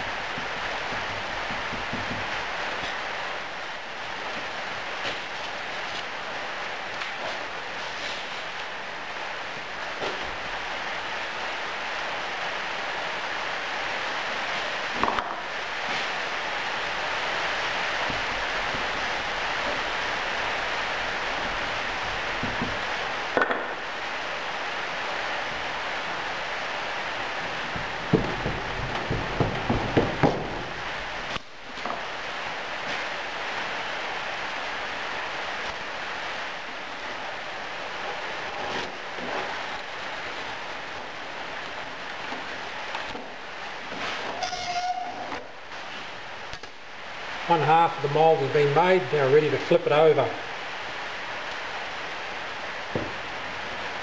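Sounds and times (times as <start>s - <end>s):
knocks and thuds: 0.0s - 3.0s, 21.3s - 23.8s, 27.3s - 32.0s, 52.9s - 53.2s
hands packing moulding sand: 0.0s - 11.8s, 13.2s - 44.5s
steady hiss: 0.0s - 54.0s.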